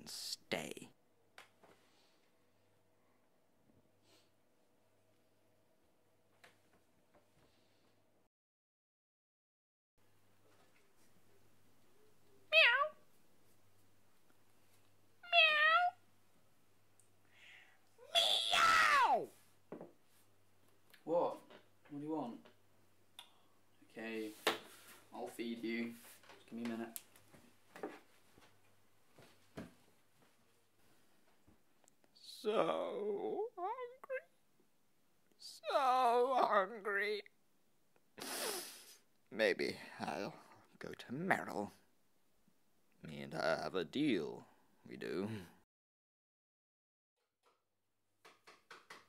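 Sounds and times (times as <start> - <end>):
cat meowing: 12.5 - 13.0, 15.2 - 16.0.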